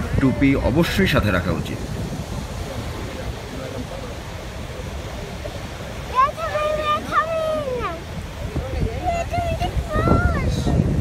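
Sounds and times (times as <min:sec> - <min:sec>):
boat engine rumble: 0:00.0 - 0:11.0
wind: 0:00.0 - 0:11.0
child's drawn-out vocal sound: 0:06.1 - 0:08.1, 0:09.2 - 0:10.8.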